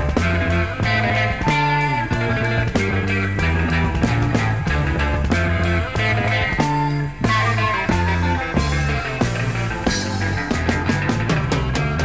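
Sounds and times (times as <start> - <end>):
drum hits on a steady beat: 0.0 - 12.0
rock band playing: 0.0 - 12.0.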